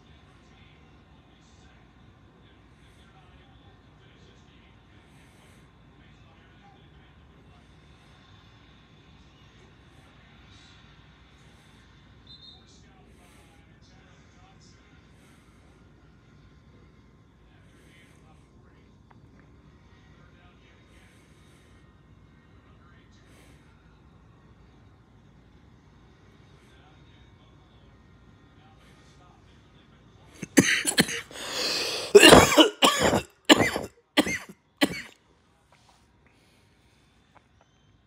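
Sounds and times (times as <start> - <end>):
faint low hum: 0.0 - 38.0
person coughing: 30.4 - 35.1.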